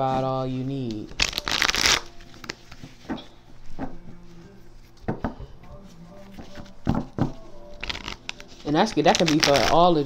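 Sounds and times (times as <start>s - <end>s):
cards being shuffled: 0.7s - 4.0s, 4.7s - 10.0s.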